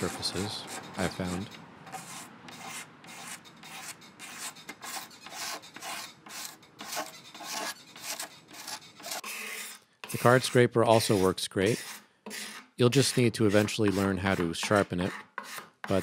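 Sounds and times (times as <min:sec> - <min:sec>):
knife blade scraping wood: 0:00.0 - 0:16.0.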